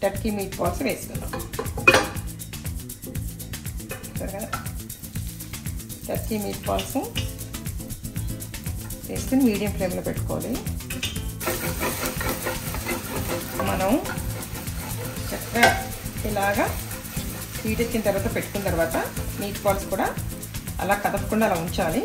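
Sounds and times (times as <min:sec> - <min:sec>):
background music: 0:00.0 - 0:22.0
meatballs sizzling in a frying pan: 0:00.2 - 0:22.0.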